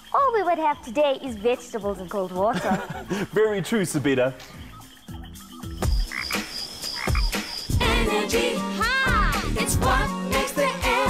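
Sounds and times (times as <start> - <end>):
frog-like croaks: 4.4 - 7.5.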